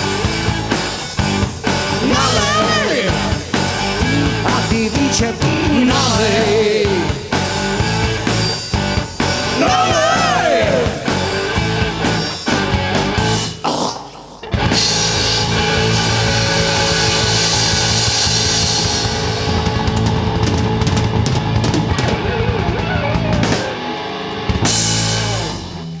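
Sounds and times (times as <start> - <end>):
hard rock band playing: 0.0 - 26.0.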